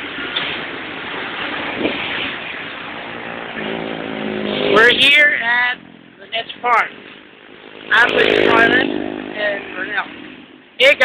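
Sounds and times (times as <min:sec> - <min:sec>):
road traffic rushing: 0:00.0 - 0:11.0.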